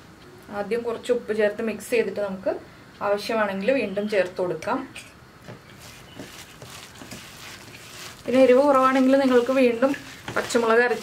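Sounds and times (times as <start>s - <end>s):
hand squishing batter in bowl: 5.5s - 11.0s.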